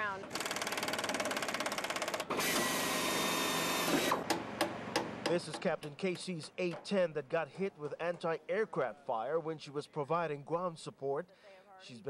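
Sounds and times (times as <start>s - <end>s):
power tool rattling on metal: 0.3s - 2.8s.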